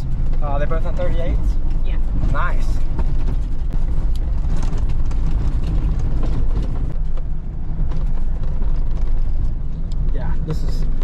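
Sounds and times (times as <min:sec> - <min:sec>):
low rumble of engine and tyres: 0:00.0 - 0:11.0
rattles and knocks from bumps: 0:00.0 - 0:11.0.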